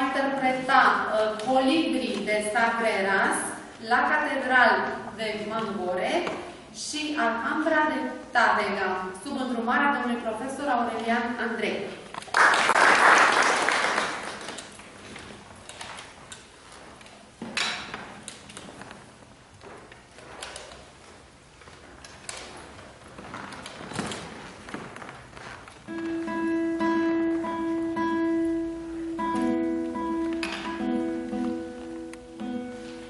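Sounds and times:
applause: 0:12.2 - 0:14.6
knocks and shuffles: 0:14.7 - 0:26.5
guitar strings plucked in tuning: 0:25.9 - 0:33.0.

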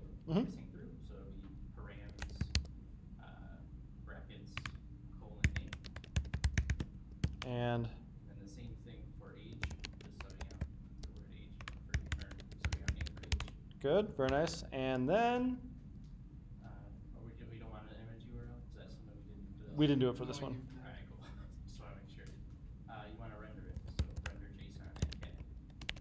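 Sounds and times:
typing on a keyboard: 0:02.0 - 0:02.7, 0:04.6 - 0:04.8, 0:05.4 - 0:07.5, 0:09.5 - 0:13.6, 0:23.7 - 0:26.0.

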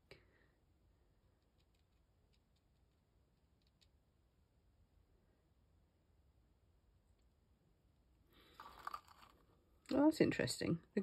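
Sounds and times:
faint rustle or scrape: 0:08.3 - 0:09.7.

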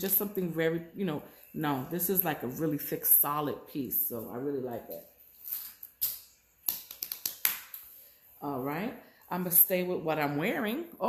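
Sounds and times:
small objects tapping and clicking: 0:05.6 - 0:07.9.

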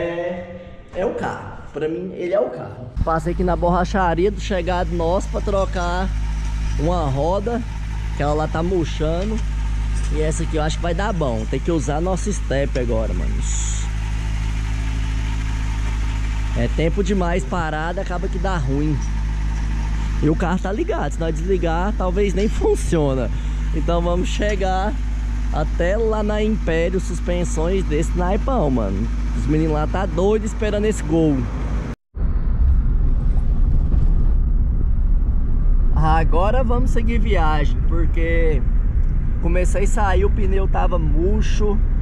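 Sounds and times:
car engine idling: 0:03.0 - 0:32.0, 0:34.2 - 0:42.0.

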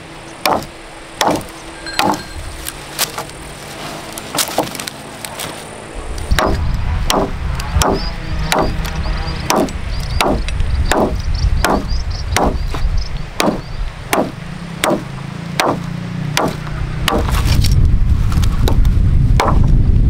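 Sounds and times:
machete chopping wood: 0:00.4 - 0:02.2, 0:04.3 - 0:04.8, 0:06.3 - 0:08.9, 0:09.5 - 0:12.8, 0:13.4 - 0:17.4, 0:18.6 - 0:19.7.

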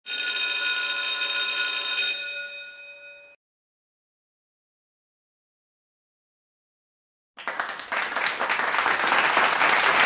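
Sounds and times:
bright metallic bell ringing: 0:00.1 - 0:03.4.

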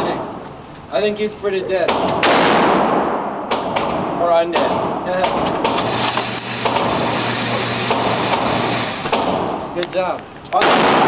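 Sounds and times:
ventilation noise and hum: 0:00.0 - 0:11.0
faint pistol shots: 0:01.9 - 0:05.9, 0:06.6 - 0:07.0, 0:07.9 - 0:09.6, 0:10.6 - 0:11.0.

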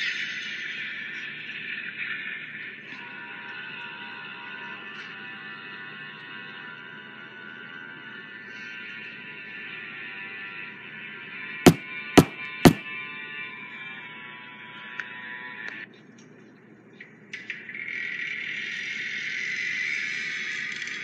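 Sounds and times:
metal door knocker knocks: 0:11.7 - 0:12.8.

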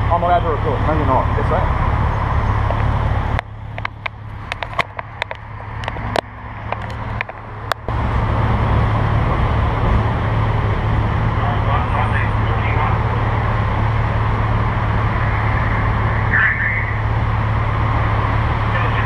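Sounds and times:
street traffic: 0:00.0 - 0:19.0
camera clicks and knocks: 0:03.8 - 0:07.4.

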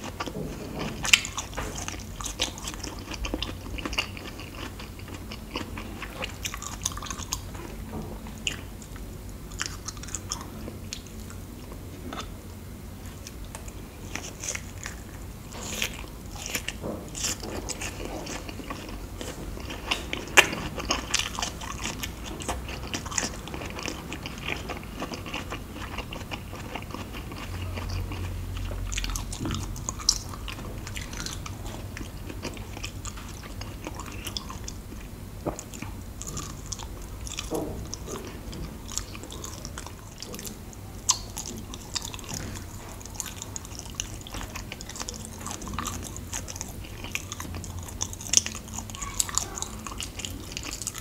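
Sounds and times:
close chewing mouth sounds: 0:00.0 - 0:12.4, 0:13.0 - 0:51.0.

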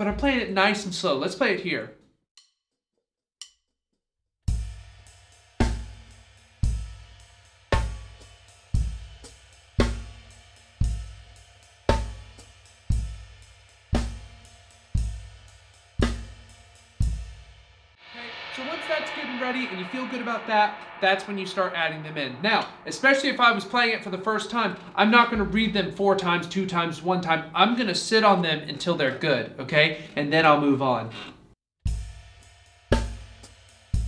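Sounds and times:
slow drum kit groove: 0:04.5 - 0:25.9, 0:31.9 - 0:34.0.

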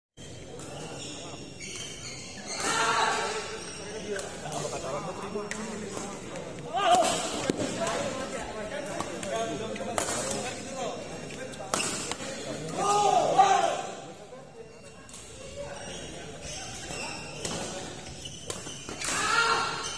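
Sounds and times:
loud voices: 0:02.4 - 0:03.6, 0:12.0 - 0:14.2, 0:19.0 - 0:19.9.

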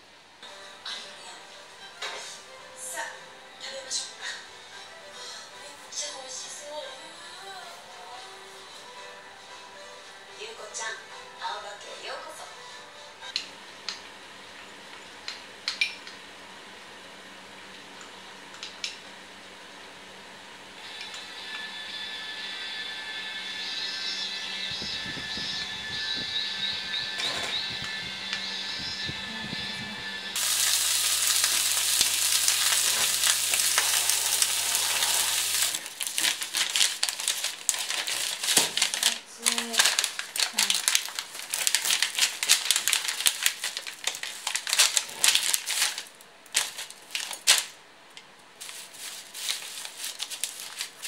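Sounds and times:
electric fan whooshing: 0:16.3 - 0:51.0
low hum: 0:21.2 - 0:31.4.

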